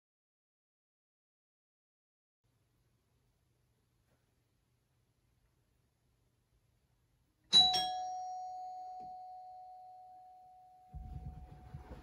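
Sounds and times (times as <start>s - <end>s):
two-note doorbell chime: 7.5s - 10.9s.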